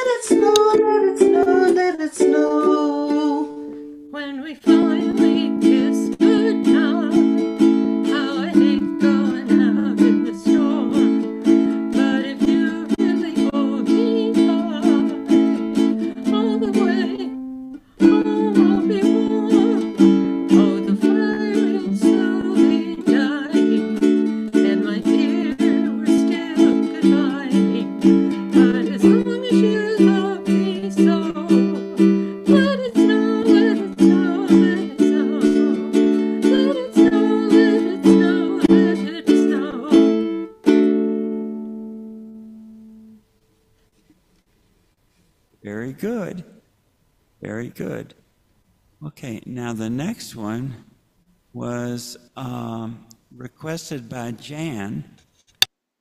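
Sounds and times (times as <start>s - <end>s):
ukulele strumming chords: 0.0s - 43.3s.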